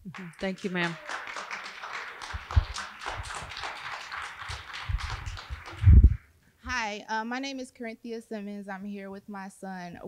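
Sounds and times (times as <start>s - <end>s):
audience applauding: 0.0s - 6.2s
low thumps: 4.9s - 6.8s.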